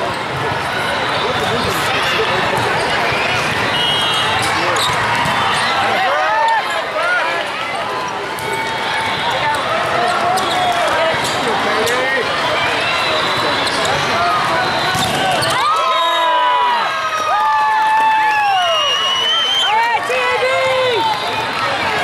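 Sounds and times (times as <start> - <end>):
din of many voices: 0.0 - 15.7
sneakers squeaking on wooden court: 14.9 - 15.6.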